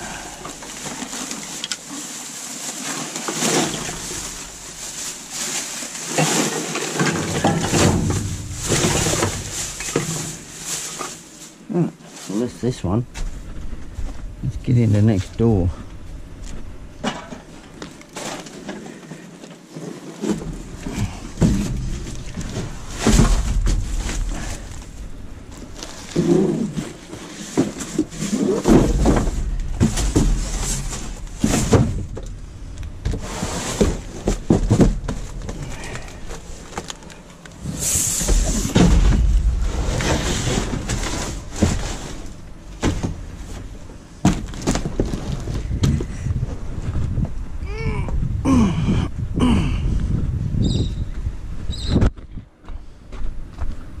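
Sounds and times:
cardboard boxes knocking in metal bin: 0.6s - 11.2s, 20.3s - 24.7s, 26.0s - 32.3s, 33.0s - 35.7s, 38.2s - 46.0s
low rumble: 37.5s - 42.8s.

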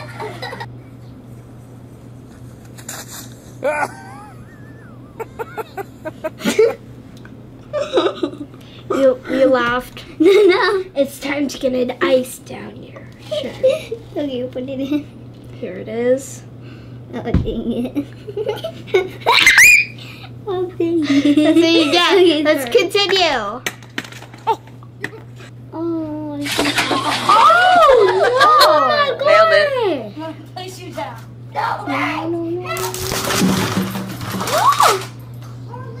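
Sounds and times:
child laughing: 0.0s - 0.7s, 3.6s - 6.8s, 7.7s - 8.5s, 10.2s - 10.9s, 13.2s - 14.0s, 17.5s - 20.0s, 20.9s - 22.5s, 27.0s - 29.7s
girls giggling: 0.0s - 0.7s, 3.5s - 6.9s, 7.6s - 8.6s, 10.1s - 10.9s, 13.3s - 14.0s, 17.6s - 20.3s, 20.9s - 22.5s, 27.0s - 29.3s
steady low hum: 0.0s - 36.0s
child crying out: 19.3s - 20.0s.

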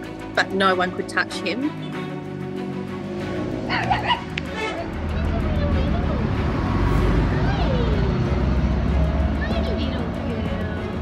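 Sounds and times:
road traffic rumble: 0.0s - 11.0s.

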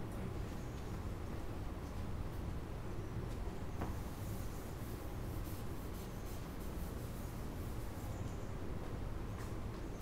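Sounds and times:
eraser brushing chalkboard: 3.9s - 8.3s.

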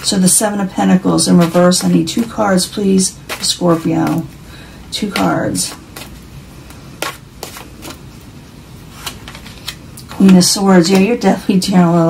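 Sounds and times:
cards clicking: 9.0s - 10.3s.

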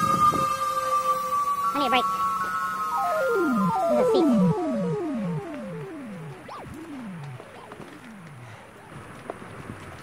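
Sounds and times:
whining tones falling in pitch: 0.0s - 8.9s
bike rolling and rattling: 5.5s - 10.0s.

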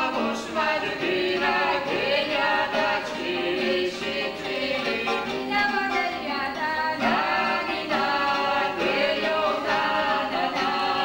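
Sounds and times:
mixed choir singing polyphonic folk song: 0.0s - 11.0s.

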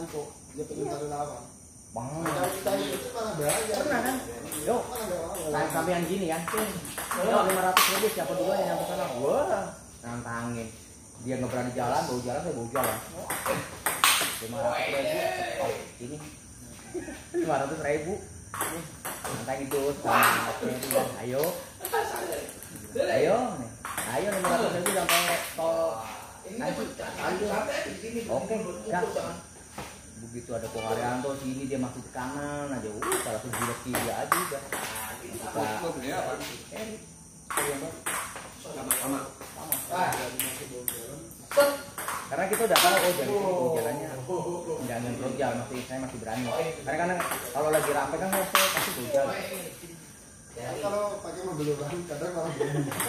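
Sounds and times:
voices talking: 0.0s - 53.0s
ball bouncing on table: 2.2s - 8.2s, 12.7s - 14.4s, 18.5s - 22.0s, 23.8s - 25.5s, 33.0s - 35.1s, 37.5s - 43.2s, 47.1s - 49.0s
table tennis ball clicking off bats: 2.2s - 8.2s, 12.8s - 14.4s.

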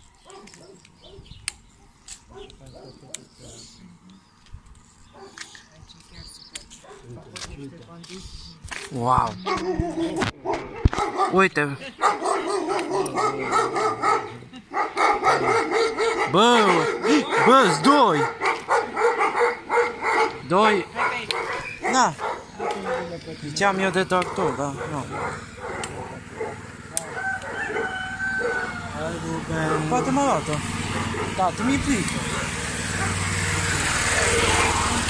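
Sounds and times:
small dog barking rapidly: 0.3s - 1.3s, 9.4s - 23.1s, 24.2s - 28.7s
rooster crowing: 26.9s - 29.3s.

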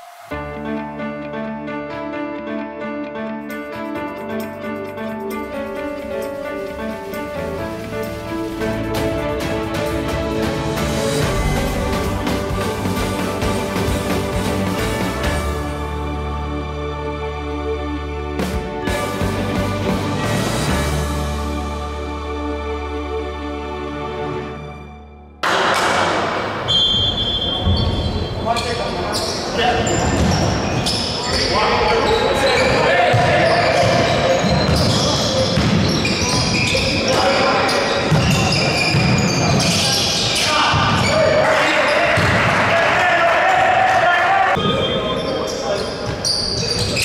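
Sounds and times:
players and spectators shouting: 31.3s - 35.5s, 36.2s - 45.3s
basketball bouncing on hardwood court: 33.1s - 36.7s, 38.1s - 39.8s.

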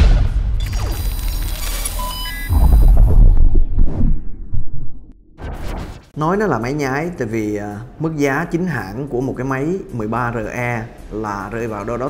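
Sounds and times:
deep pulsing bass: 2.5s - 5.6s.

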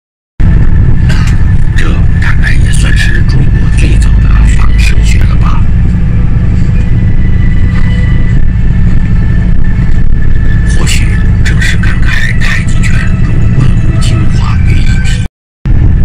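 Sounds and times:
vehicle rumble from inside: 0.4s - 16.0s
indistinct voices talking: 0.9s - 15.3s.

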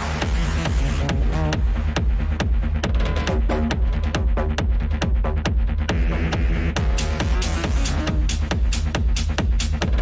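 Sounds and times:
kick drum: 0.0s - 10.0s
techno music: 0.0s - 10.0s
crisp hi-hats: 6.8s - 10.0s.

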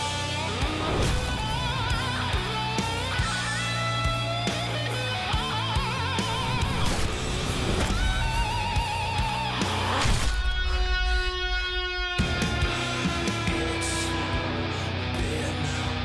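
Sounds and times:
lead guitar bending notes: 0.0s - 6.7s
heavy rock music: 0.0s - 16.0s.

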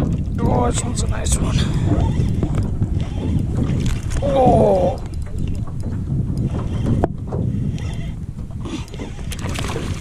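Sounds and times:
fishing reel clicking: 1.8s - 7.0s.

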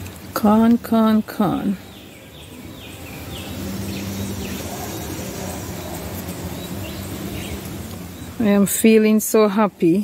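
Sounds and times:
honeybees buzzing: 0.0s - 9.3s
bird chirps: 1.7s - 8.4s.

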